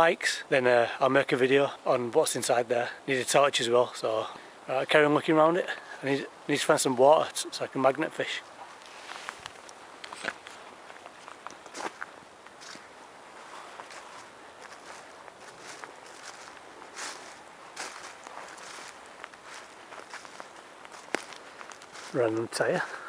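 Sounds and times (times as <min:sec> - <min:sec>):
footsteps walking unevenly: 0:08.6 - 0:23.0.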